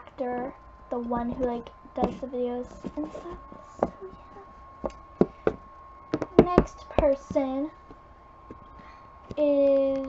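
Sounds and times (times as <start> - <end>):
faint high hum: 0.0 - 10.0.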